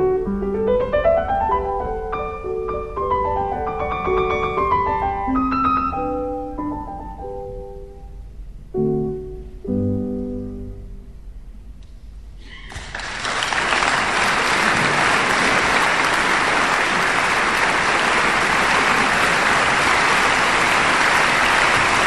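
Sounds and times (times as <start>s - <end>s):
audience applause: 12.7s - 22.0s.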